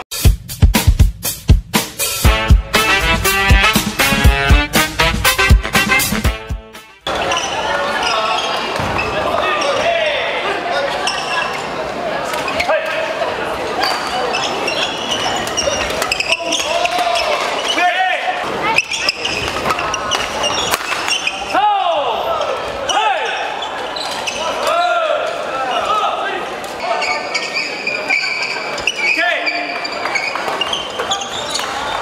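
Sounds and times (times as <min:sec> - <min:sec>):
shoe squeaks: 0:07.0 - 0:09.9, 0:11.0 - 0:11.7, 0:13.8 - 0:17.9, 0:18.6 - 0:21.6, 0:22.3 - 0:24.6, 0:26.8 - 0:32.0
voices in hall: 0:07.0 - 0:32.0.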